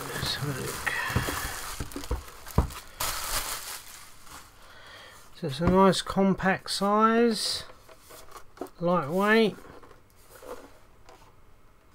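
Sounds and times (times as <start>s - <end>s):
plastic bag crinkling: 0.0s - 4.6s.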